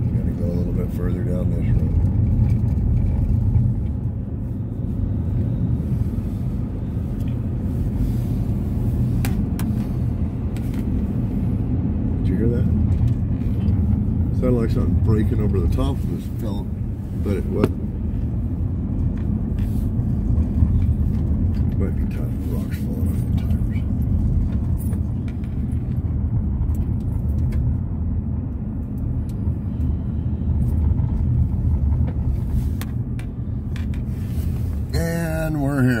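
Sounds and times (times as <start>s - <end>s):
car engine and tyre rumble: 0.0s - 36.0s.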